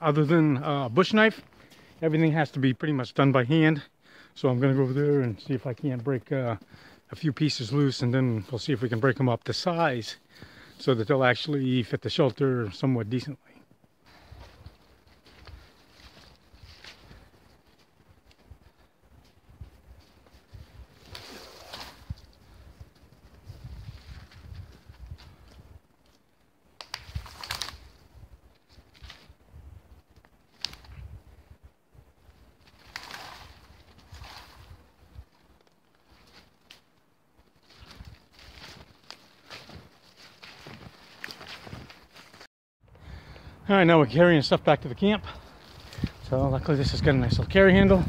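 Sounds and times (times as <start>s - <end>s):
footsteps in snow: 13.8s - 26.2s, 32.3s - 42.5s
branches cracking: 14.3s - 18.8s, 20.6s - 29.4s, 30.1s - 31.1s, 32.6s - 42.5s, 45.4s - 46.3s
branches dragged through brush: 20.4s - 22.4s, 26.9s - 28.0s, 32.6s - 36.8s.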